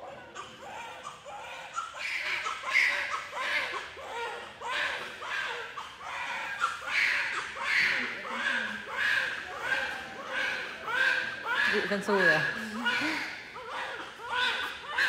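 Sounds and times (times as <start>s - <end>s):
newborn baby crying: 0.0s - 15.0s.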